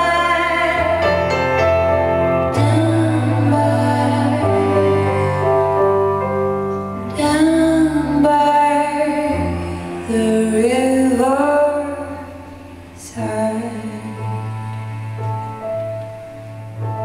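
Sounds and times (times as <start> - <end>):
woman singing sustained notes: 0.0 - 1.8, 2.5 - 6.0, 7.0 - 15.2
cello: 0.0 - 17.0
piano: 0.0 - 17.0.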